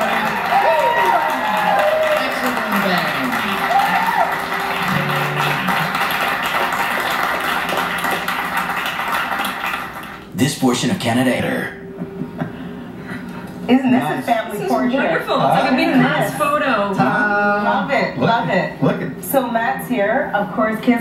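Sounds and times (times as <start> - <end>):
live band playing: 0.0 - 10.3.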